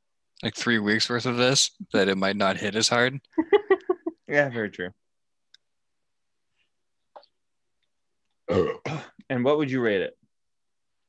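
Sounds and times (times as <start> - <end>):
person clearing throat: 8.5 - 9.2.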